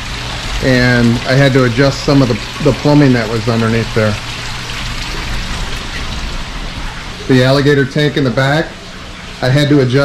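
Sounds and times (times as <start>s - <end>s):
water pouring into a pool: 0.0s - 10.0s.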